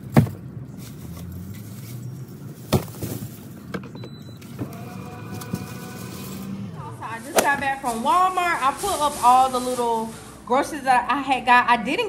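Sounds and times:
bags knocking in car: 2.7s - 3.4s
liftgate electric motor humming: 3.9s - 7.2s.

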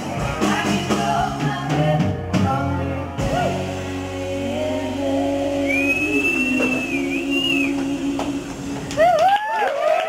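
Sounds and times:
high whistle from audience: 5.6s - 7.8s.

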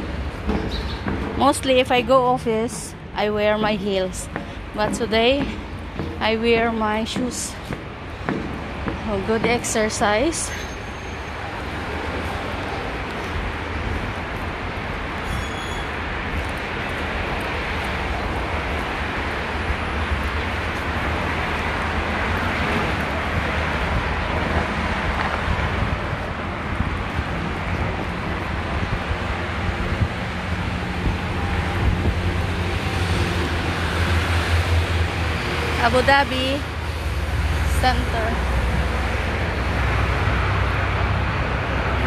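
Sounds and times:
road traffic: 0.0s - 42.0s.

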